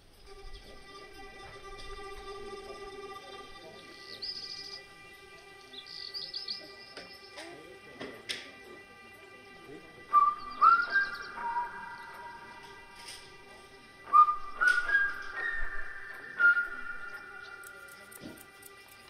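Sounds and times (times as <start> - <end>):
melodic whistling: 3.9 - 5.0, 5.7 - 7.4, 10.0 - 18.2.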